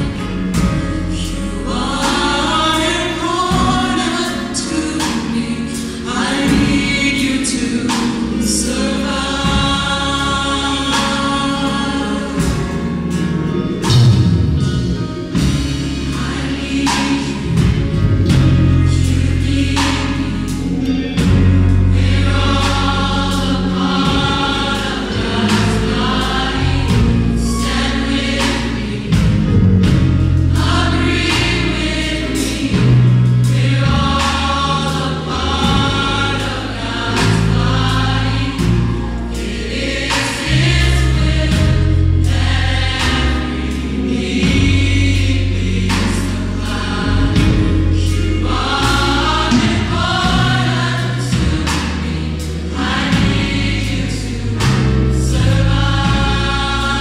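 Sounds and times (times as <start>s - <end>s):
gospel choir singing: 0.0s - 57.0s
sustained bass notes: 0.0s - 57.0s.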